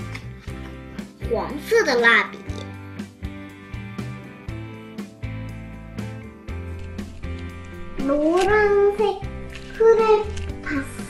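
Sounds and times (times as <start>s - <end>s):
light music with plucked guitar: 0.0s - 11.0s.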